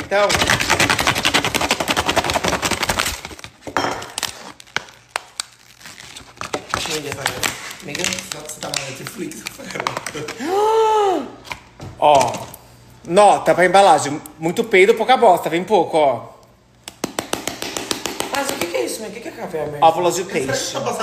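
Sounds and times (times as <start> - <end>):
plastic packaging crinkling: 0.2 - 10.4
loud vocal exclamation: 10.4 - 11.4.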